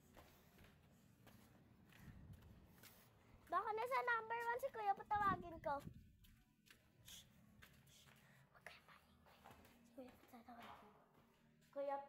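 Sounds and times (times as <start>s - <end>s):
faint whispering: 7.0s - 9.5s.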